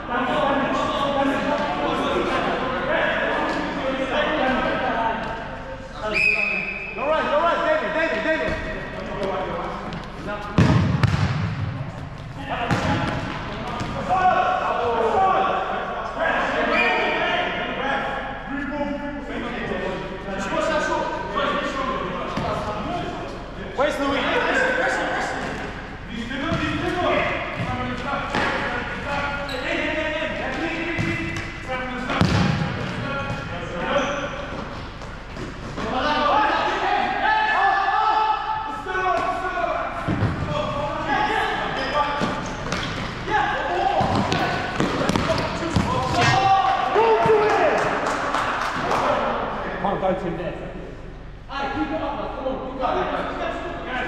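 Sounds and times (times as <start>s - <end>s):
ball kicks echoing in hall: 8.2s - 15.6s, 21.8s - 29.6s, 30.2s - 36.3s, 38.4s - 49.6s
players shouting: 12.4s - 18.7s, 43.1s - 49.6s.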